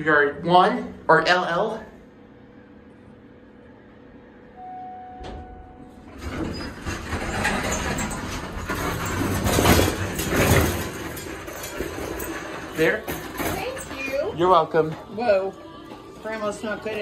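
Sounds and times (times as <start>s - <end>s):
elevator pump hum: 0.0s - 17.0s
electronic arrival tone: 4.6s - 6.0s
elevator doors opening: 4.6s - 15.8s
elevator click: 4.9s - 13.3s
shopping cart rattling: 6.1s - 15.1s.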